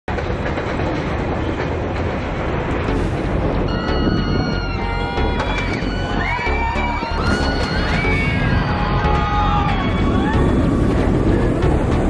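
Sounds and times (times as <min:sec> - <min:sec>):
roller coaster rumbling on track: 0:00.1 - 0:12.0
high held tones: 0:02.9 - 0:09.9.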